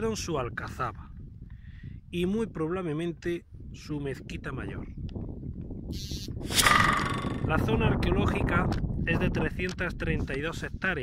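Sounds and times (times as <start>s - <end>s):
wind rumbling on microphone: 0.0s - 11.0s
harsh brief tonal sound: 6.5s - 7.6s.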